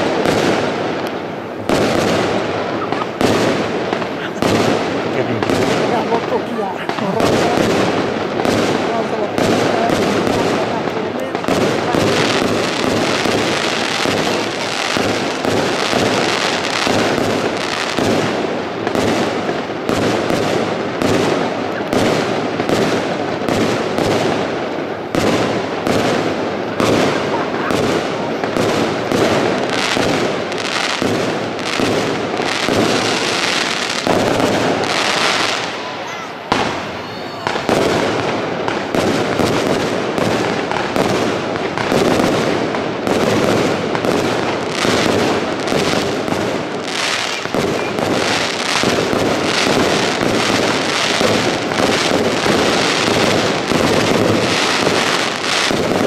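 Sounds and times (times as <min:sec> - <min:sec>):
fireworks bursts and crackling: 0:00.0 - 0:56.0.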